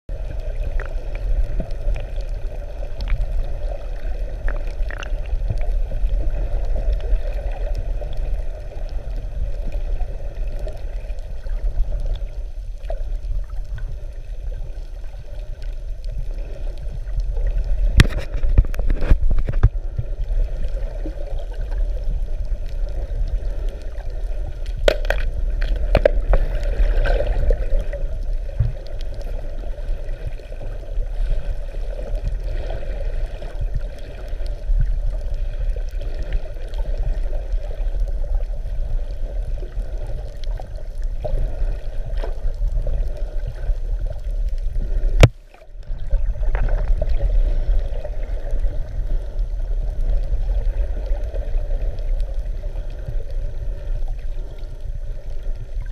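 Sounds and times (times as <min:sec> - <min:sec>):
muffled underwater rumble: 0:00.0 - 0:55.9.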